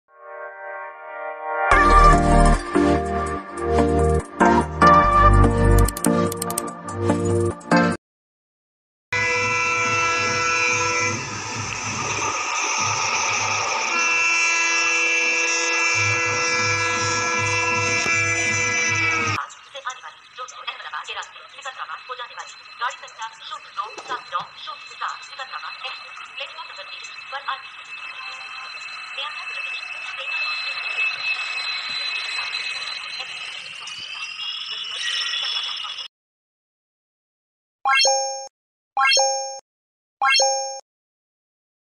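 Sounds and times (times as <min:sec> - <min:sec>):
high-pitched squeal: 0:09.2 - 0:19.4, 0:21.3 - 0:36.1
locomotive air horn chords: 0:09.2 - 0:19.4.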